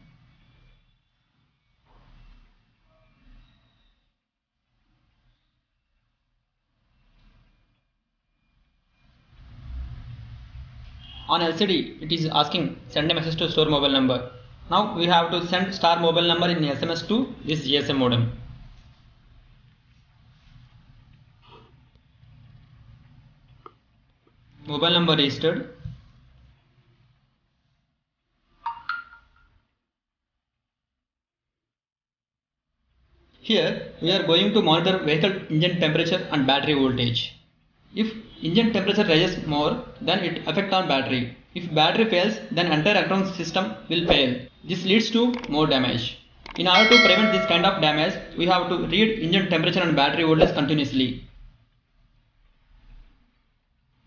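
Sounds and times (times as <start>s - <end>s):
phone notification chime: 46.8s - 48.0s.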